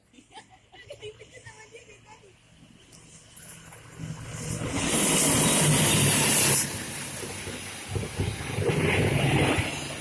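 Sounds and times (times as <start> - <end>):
passenger train passing at speed: 1.4 - 10.0
wheels on rail: 2.8 - 10.0.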